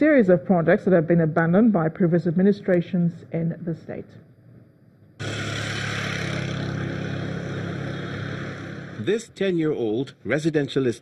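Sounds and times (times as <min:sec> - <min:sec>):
engine-like running hum: 0:05.2 - 0:09.3.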